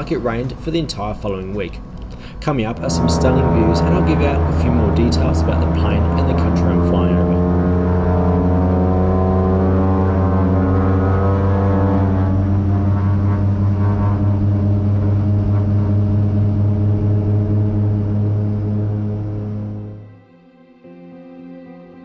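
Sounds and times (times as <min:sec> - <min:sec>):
turboprop engine drone: 0:00.0 - 0:20.2.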